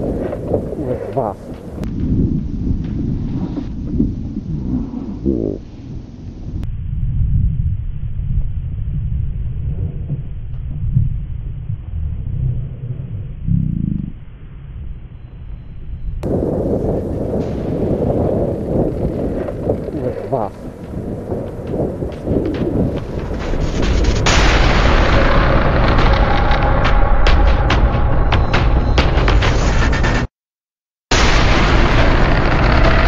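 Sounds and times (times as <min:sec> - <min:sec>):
wind buffeting microphone: 0:00.0 - 0:29.0.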